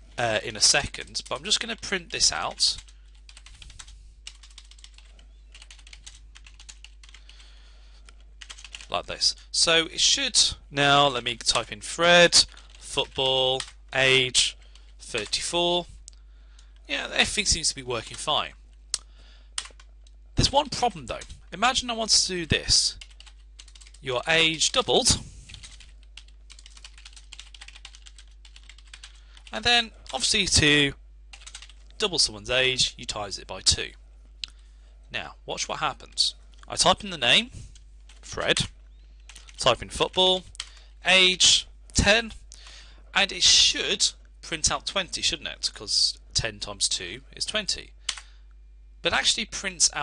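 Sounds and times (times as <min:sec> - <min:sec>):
typing on computer keyboard: 0:02.8 - 0:07.2, 0:08.4 - 0:08.9, 0:23.0 - 0:24.0, 0:25.5 - 0:29.5, 0:31.3 - 0:31.8.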